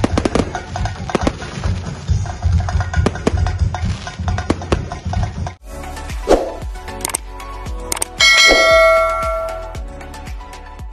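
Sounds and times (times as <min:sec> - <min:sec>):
background music with beat: 0:00.0 - 0:10.9
bell-like notification ding: 0:08.2 - 0:09.8.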